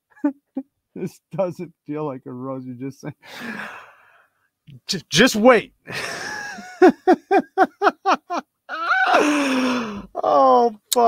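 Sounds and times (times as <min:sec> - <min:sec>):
man speaking: 0:01.0 - 0:03.7, 0:04.7 - 0:06.7
man sighing: 0:03.2 - 0:04.1, 0:08.9 - 0:10.3.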